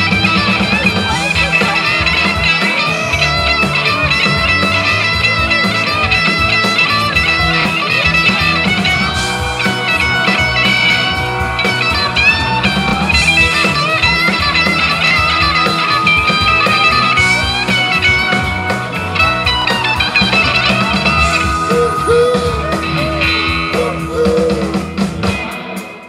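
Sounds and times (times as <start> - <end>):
electric guitar with bent notes: 0.0 - 26.0
hammond organ: 0.0 - 26.0
steady drum beat: 0.0 - 26.0.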